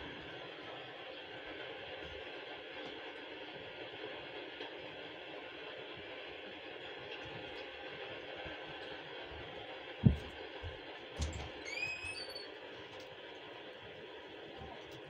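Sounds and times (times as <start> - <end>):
soft thumps: 10.0 - 11.4.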